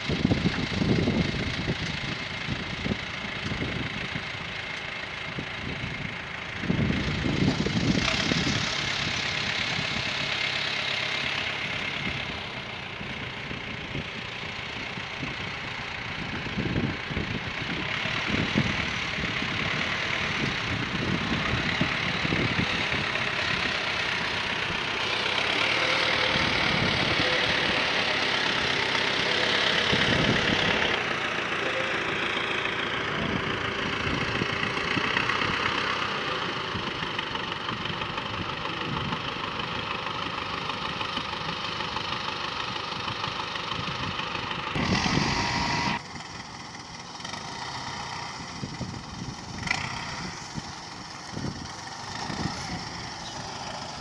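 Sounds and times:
diesel engines running: 0:00.0 - 0:54.0.

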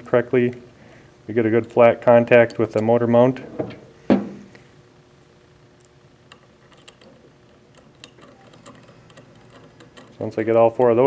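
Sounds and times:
small metallic clicks: 0:05.8 - 0:10.9.

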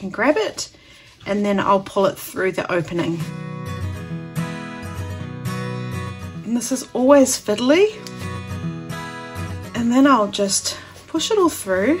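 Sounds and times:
strummed acoustic guitar chords: 0:03.3 - 0:06.4, 0:08.1 - 0:09.8.

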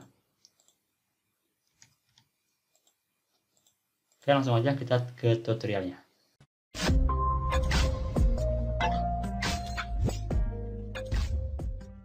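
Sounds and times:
keyboard and mouse clicks: 0:00.0 - 0:00.8, 0:01.7 - 0:04.3.

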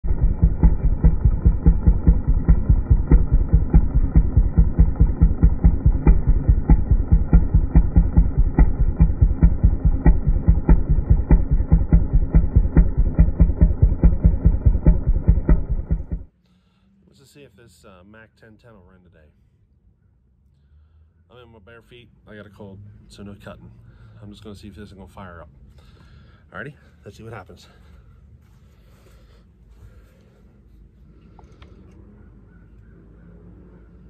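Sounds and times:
chainsaw engine idling: 0:00.0 - 0:16.3.

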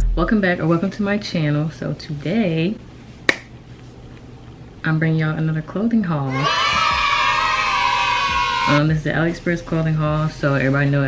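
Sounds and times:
finger snap: 0:03.3 - 0:03.5.

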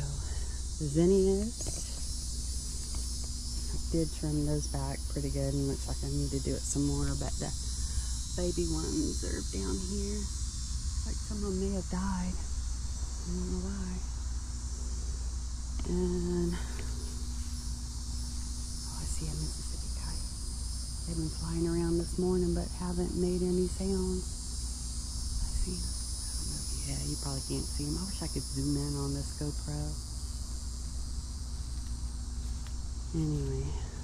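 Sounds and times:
person speaking: 0:00.0 - 0:02.0, 0:15.8 - 0:16.9, 0:33.2 - 0:34.0
insect chorus: 0:00.0 - 0:34.0
low steady rumble: 0:00.0 - 0:34.0.

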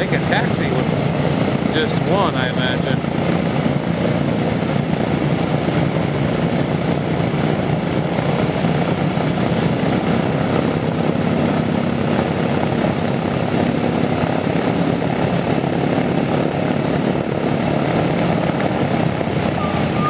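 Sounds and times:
radial engines droning: 0:00.0 - 0:20.0.

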